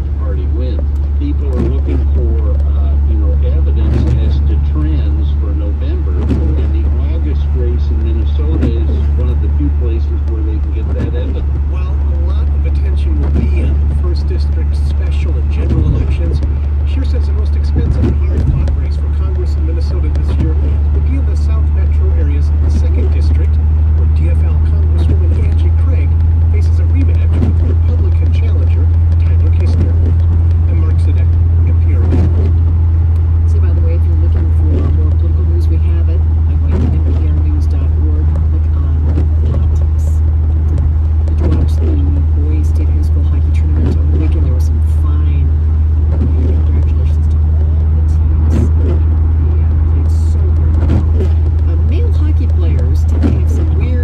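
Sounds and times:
car engine and tyres on wet road: 0.0s - 54.0s
muffled voice talking: 0.0s - 54.0s.

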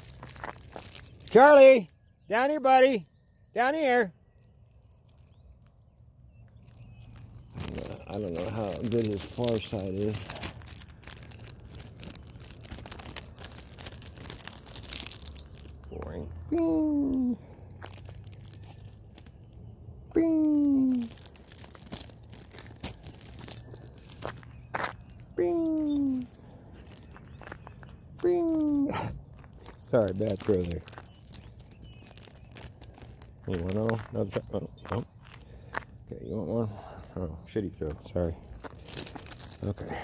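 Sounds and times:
footsteps on gritty asphalt: 0.0s - 2.1s, 4.2s - 19.8s, 21.0s - 40.0s
rustling on handheld microphone: 4.4s - 16.1s, 20.9s - 25.4s, 26.0s - 35.9s, 38.0s - 39.8s.

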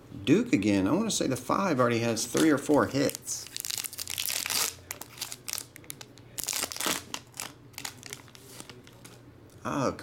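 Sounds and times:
foil wrapper crinkling: 2.3s - 9.1s.

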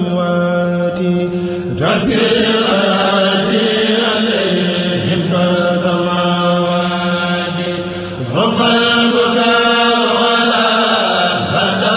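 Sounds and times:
devotional chanting: 0.0s - 11.9s.

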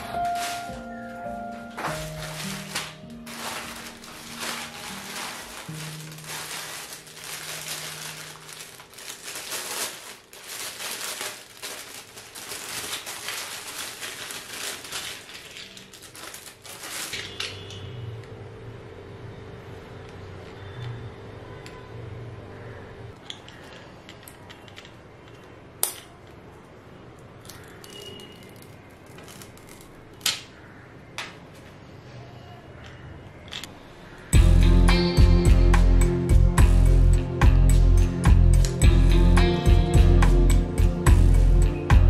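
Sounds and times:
background music soft held notes: 0.0s - 9.4s, 34.3s - 42.0s
plastic packaging crinkling: 0.0s - 17.8s, 27.4s - 30.4s.

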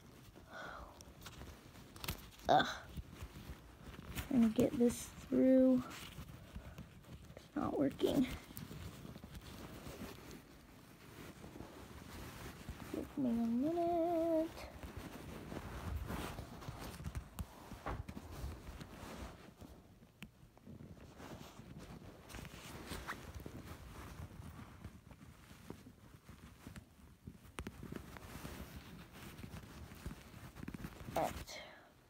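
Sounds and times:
rustling handling noise: 0.0s - 32.0s.

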